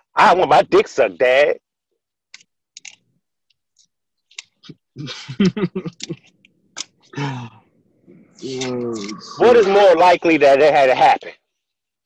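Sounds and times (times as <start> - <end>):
person laughing: 5.0 - 6.3.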